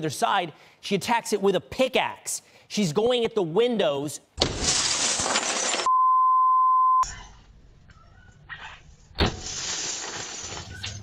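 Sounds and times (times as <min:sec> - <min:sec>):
high censor bleep tone: 0:05.9 - 0:07.1.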